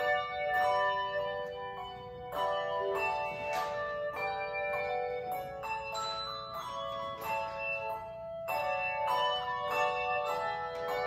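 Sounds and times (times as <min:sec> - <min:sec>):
handbells ringing in chords: 0:00.0 - 0:11.0.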